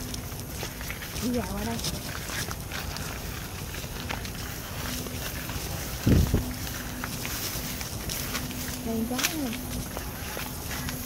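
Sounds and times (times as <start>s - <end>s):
footsteps rustling through grass: 0.0s - 11.0s.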